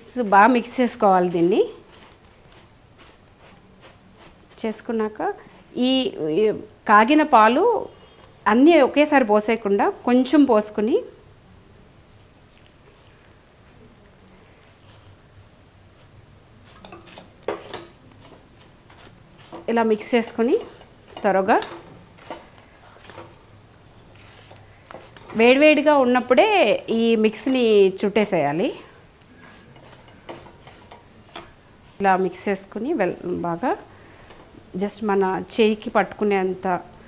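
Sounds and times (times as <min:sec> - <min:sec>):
woman's voice: 0:00.0 - 0:01.8, 0:04.6 - 0:11.2, 0:19.7 - 0:21.8, 0:25.3 - 0:28.9, 0:32.0 - 0:33.9, 0:34.7 - 0:36.9
fingers rustling in grainy food: 0:00.3 - 0:05.3, 0:24.0 - 0:26.3.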